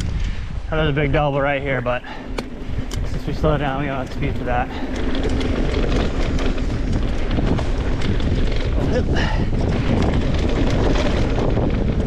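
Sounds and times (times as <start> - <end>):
bike rattling clicks: 0.0 - 0.4, 1.9 - 12.0
wind buffeting microphone: 0.0 - 12.0
tyres rumbling on dirt: 0.8 - 12.0.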